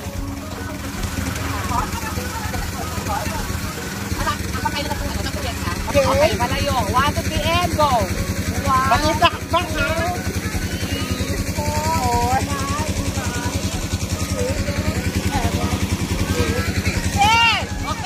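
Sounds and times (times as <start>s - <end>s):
small engine running: 0.0s - 18.0s
high-pitched voices calling out: 8.9s - 18.0s.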